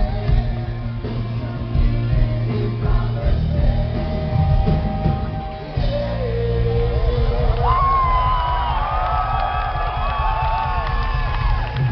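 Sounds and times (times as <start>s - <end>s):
rock band music: 0.0s - 11.9s
crowd cheering and screaming: 5.5s - 11.9s.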